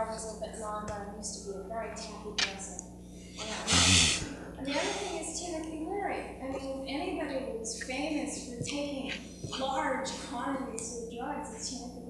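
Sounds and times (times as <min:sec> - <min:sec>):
loud breathy burst: 0:03.1 - 0:05.3
faint speech: 0:03.4 - 0:11.8.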